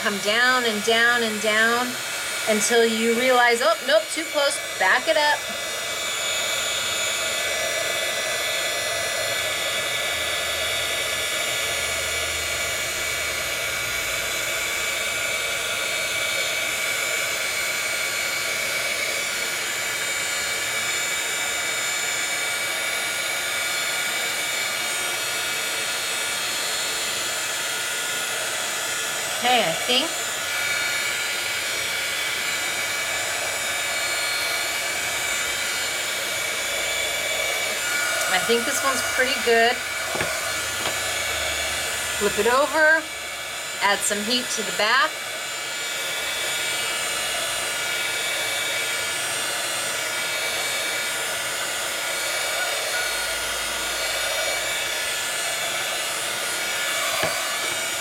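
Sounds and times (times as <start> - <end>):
heat tool whirring: 0.0 - 58.0.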